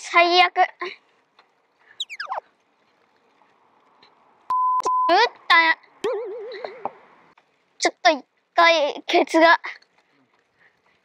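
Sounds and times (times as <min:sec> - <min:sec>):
whistle tone sliding down: 0:02.0 - 0:02.4
steady beep: 0:04.5 - 0:05.1.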